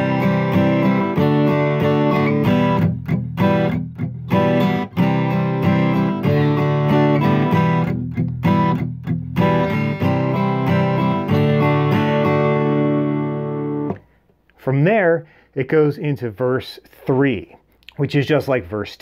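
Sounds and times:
percussive muted guitar strums: 0.0 - 14.1
acoustic guitar strumming: 0.0 - 14.2.

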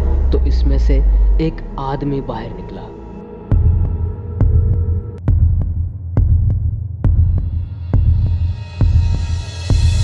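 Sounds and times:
low heartbeat-like throb: 0.0 - 10.0.

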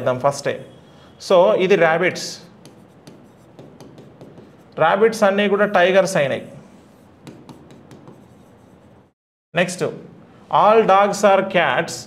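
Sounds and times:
pen scratching on writing board: 2.5 - 4.8, 6.8 - 9.1.

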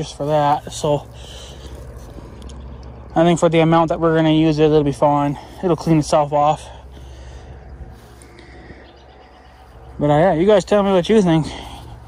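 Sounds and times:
low steady outdoor rumble: 0.0 - 12.0.

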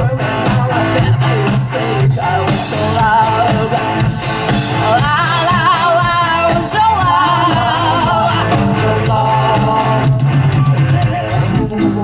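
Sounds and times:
drum roll: 0.0 - 12.0
rock band playing: 0.0 - 12.0.

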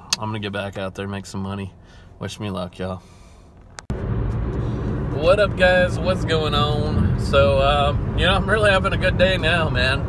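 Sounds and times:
road and engine noise in car: 0.0 - 10.0.

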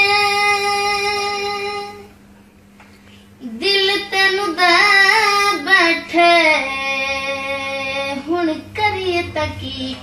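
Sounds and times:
boy singing in high voice: 0.0 - 2.1, 3.4 - 10.0.

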